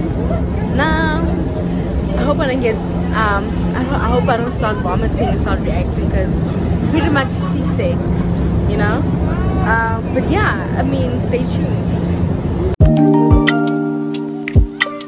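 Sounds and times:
woman talking: 0:00.0 - 0:12.2
boat engine humming: 0:00.0 - 0:12.8.

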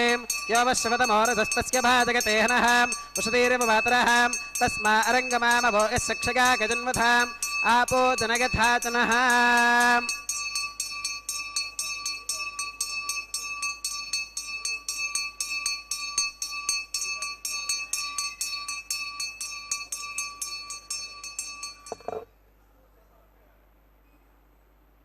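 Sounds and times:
hand bell ringing: 0:00.0 - 0:22.2.

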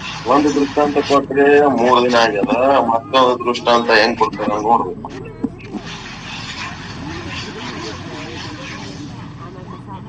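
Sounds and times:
steady background rush: 0:00.0 - 0:10.0.

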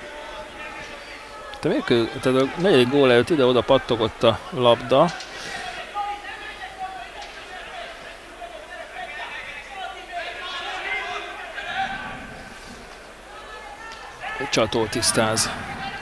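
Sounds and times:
distant crowd shouting and calling: 0:00.0 - 0:16.0.

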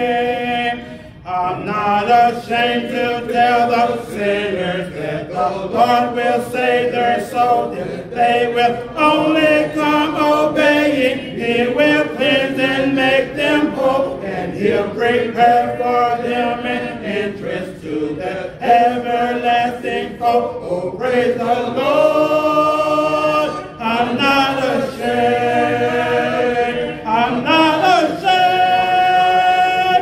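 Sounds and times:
congregation singing a cappella: 0:00.0 - 0:30.0
man singing a hymn: 0:00.0 - 0:30.0.

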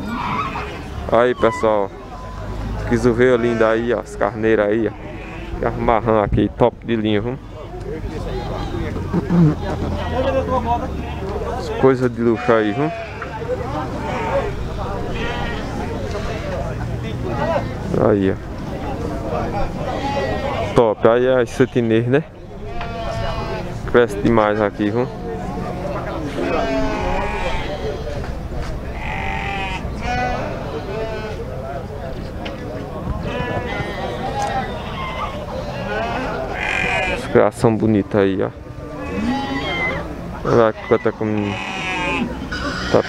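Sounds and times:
chatter of people: 0:00.0 - 0:43.0
sheep bleating: 0:03.3 - 0:03.9, 0:04.9 - 0:05.6, 0:12.3 - 0:13.3, 0:14.0 - 0:16.6, 0:19.8 - 0:20.8, 0:22.5 - 0:23.7, 0:26.3 - 0:28.1, 0:29.0 - 0:31.4, 0:33.2 - 0:37.3, 0:39.0 - 0:43.0.

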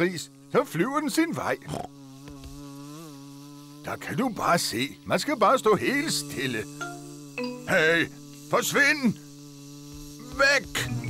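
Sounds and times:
cartoon wasp buzzing: 0:00.0 - 0:11.0.

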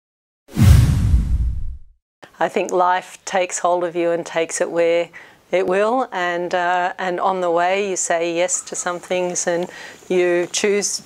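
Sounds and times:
deep rumbling boom: 0:00.5 - 0:01.9
whoosh: 0:00.5 - 0:01.9.

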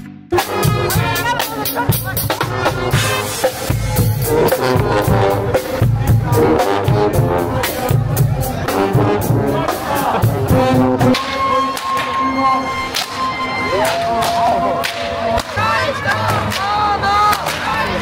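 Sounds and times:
drum kit and bass drum: 0:00.0 - 0:12.0
trombones: 0:00.0 - 0:15.5
trumpets: 0:00.3 - 0:18.0
sousaphone: 0:10.6 - 0:14.8.

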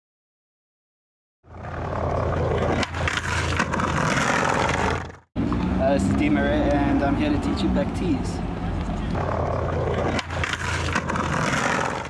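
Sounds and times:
skateboard wheels on concrete: 0:01.5 - 0:12.0
street noise: 0:01.5 - 0:12.0
man speaking: 0:05.8 - 0:08.5.

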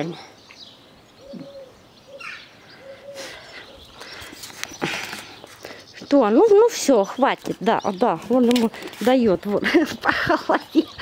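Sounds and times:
bird cooing: 0:01.2 - 0:05.4
soft rustling: 0:03.8 - 0:10.8.

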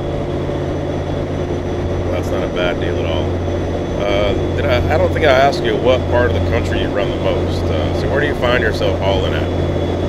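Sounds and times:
vehicle droning at highway speed: 0:00.0 - 0:10.0
people talking: 0:02.1 - 0:03.4, 0:04.0 - 0:09.5.

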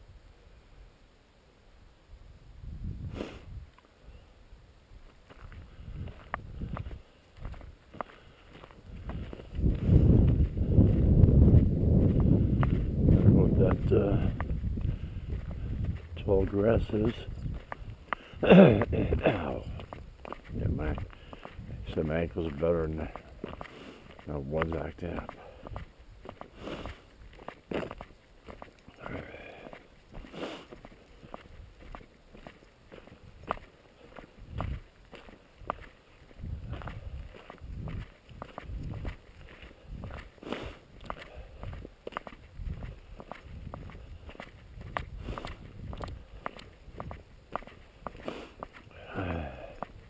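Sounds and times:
footsteps crunching on gravel: 0:05.0 - 0:50.0.

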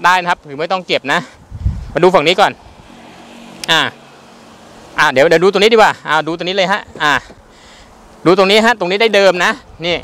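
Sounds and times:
faint car engine running: 0:02.0 - 0:08.3.

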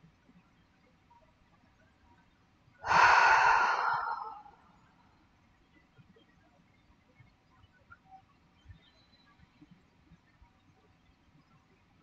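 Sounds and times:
person sighing: 0:02.9 - 0:04.6.

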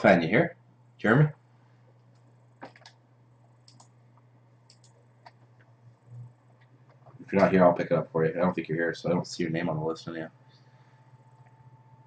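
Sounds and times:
low steady hum: 0:00.0 - 0:12.0
faint computer mouse clicks: 0:03.6 - 0:03.9, 0:04.7 - 0:06.7.

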